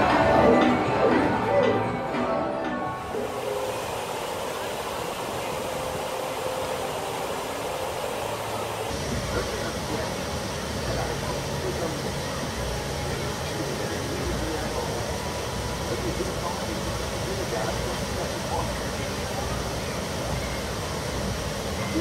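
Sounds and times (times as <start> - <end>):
indistinct voices: 0.0 - 19.8
water rushing over a cascade: 2.9 - 22.0.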